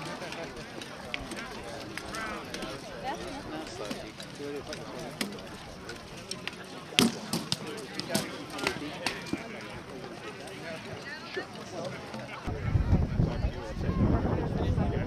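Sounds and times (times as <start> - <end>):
people talking: 0.0 - 15.0.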